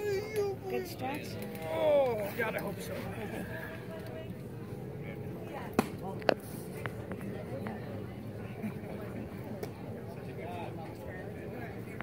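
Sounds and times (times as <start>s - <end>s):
spectators chatting: 0.0s - 12.0s.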